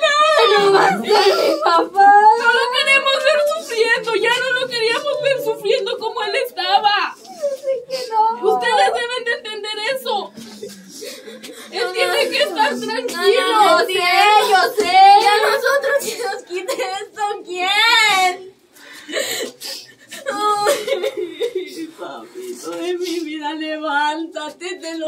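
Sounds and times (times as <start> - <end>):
women sobbing and wailing: 0.0 - 9.8, 19.1 - 22.2
women speaking tearfully: 0.0 - 10.4, 11.7 - 18.5, 20.1 - 24.1.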